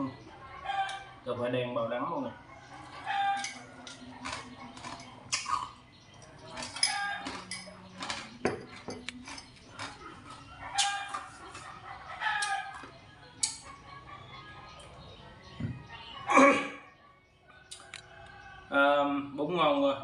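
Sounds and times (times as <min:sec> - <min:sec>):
chickens clucking: 0:00.0 - 0:19.8
rooster crowing: 0:02.3 - 0:03.9.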